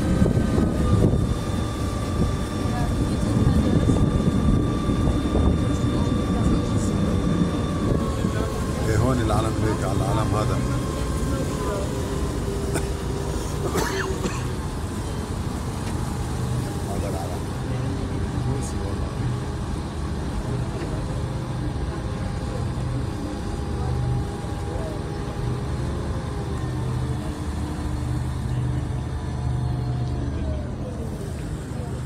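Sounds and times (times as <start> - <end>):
water noise: 0.0 - 30.1
boat engine rumble: 0.0 - 32.0
wind: 0.0 - 32.0.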